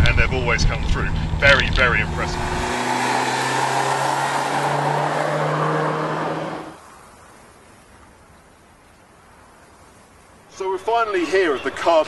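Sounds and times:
car engine driving by: 0:00.0 - 0:06.8
road and wind noise: 0:00.0 - 0:12.0.

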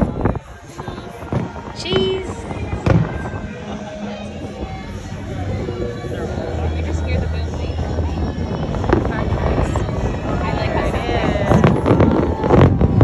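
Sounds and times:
fireworks bangs: 0:00.0 - 0:13.0
people's voices: 0:00.0 - 0:13.0.

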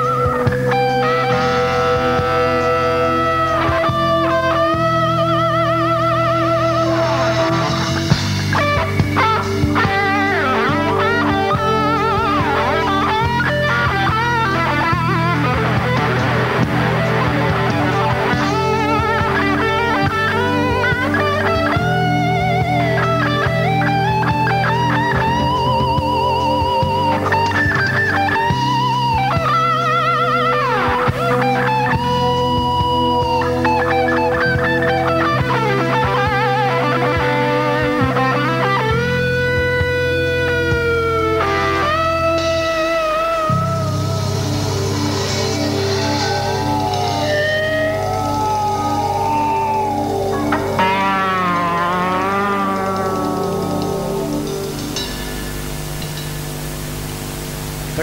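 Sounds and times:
bass notes: 0:00.0 - 0:58.0
drums: 0:00.0 - 0:58.0
electric guitar lead with vibrato: 0:00.0 - 0:58.0.

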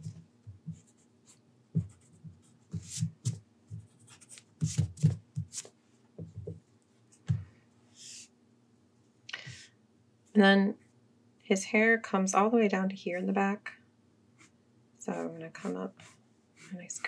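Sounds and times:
pencil scratching on paper: 0:00.7 - 0:03.0, 0:14.4 - 0:17.0.

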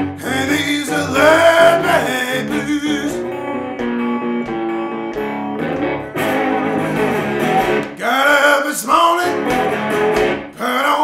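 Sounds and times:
blues slide guitar: 0:00.0 - 0:08.2, 0:09.2 - 0:10.6.

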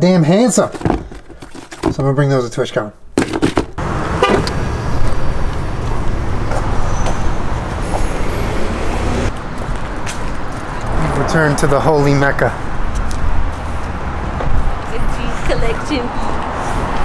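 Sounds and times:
road traffic rumble: 0:03.8 - 0:17.0.

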